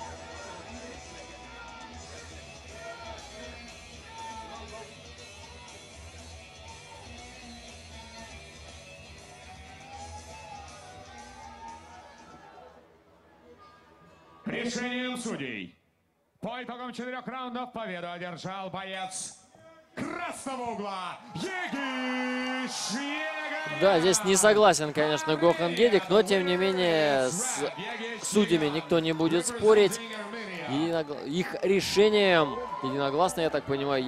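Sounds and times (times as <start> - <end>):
man announcing over loudspeaker: 14.4 - 15.8, 16.4 - 34.0
commentator speaking: 20.0 - 34.0.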